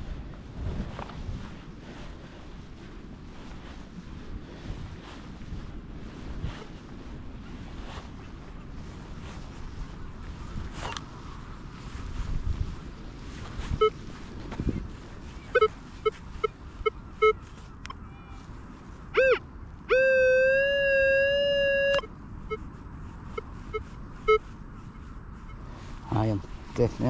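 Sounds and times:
wind rumbling on microphone: 0.0 - 27.0
metal detector beeping: 10.8 - 11.0, 13.6 - 14.0, 15.4 - 18.4, 19.1 - 22.7, 23.3 - 25.6.

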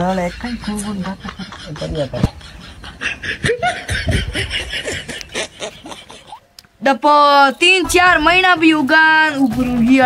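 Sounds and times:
person laughing: 0.2 - 6.4.

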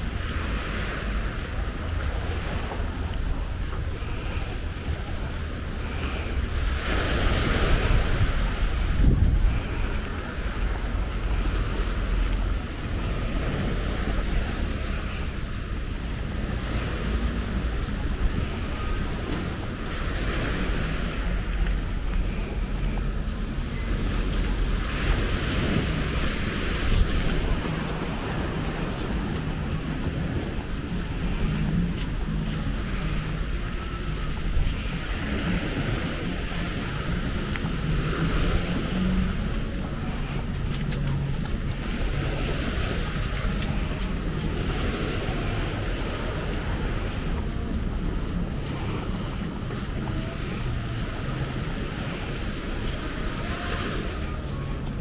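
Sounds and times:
surf breaking along seawall: 0.0 - 55.0
wind buffeting microphone: 0.0 - 55.0.

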